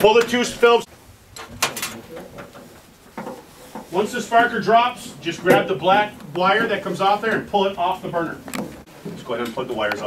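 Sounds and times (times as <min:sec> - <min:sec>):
quiet handling: 0:00.0 - 0:10.0.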